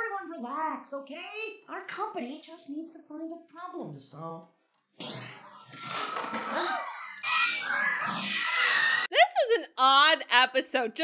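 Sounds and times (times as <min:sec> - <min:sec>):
shrill animal-like screeching: 0:05.7 - 0:09.1.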